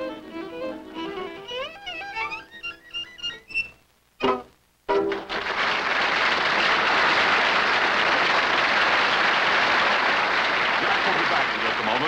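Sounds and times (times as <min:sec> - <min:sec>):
audience applauding: 0:05.0 - 0:12.0.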